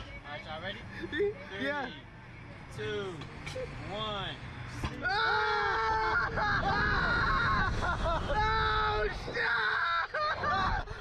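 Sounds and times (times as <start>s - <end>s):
riders screaming: 4.9s - 11.0s.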